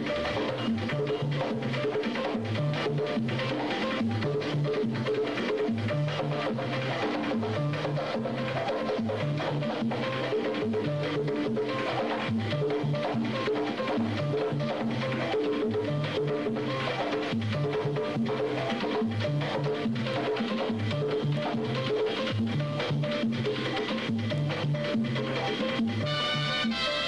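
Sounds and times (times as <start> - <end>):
cuban dance band music: 0.0 - 27.0.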